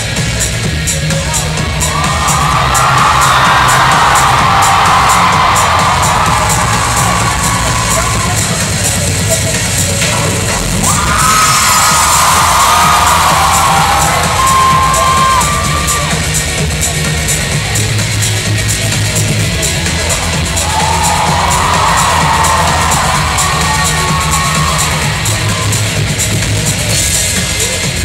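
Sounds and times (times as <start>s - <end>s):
music with steady beat: 0.0s - 28.0s
audience cheering and shouting: 0.1s - 28.0s.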